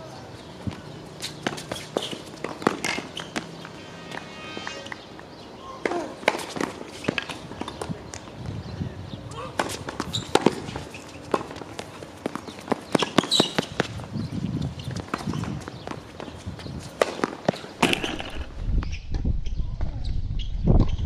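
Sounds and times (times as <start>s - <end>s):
shoe steps on court: 0.6s - 3.6s, 9.6s - 18.2s
tennis racket strikes and bounces: 1.4s - 4.4s
low rumble: 3.4s - 5.6s.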